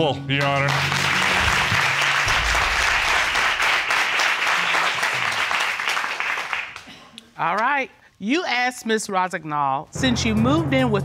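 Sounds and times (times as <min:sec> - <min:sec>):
audience applauding: 0:00.3 - 0:06.9.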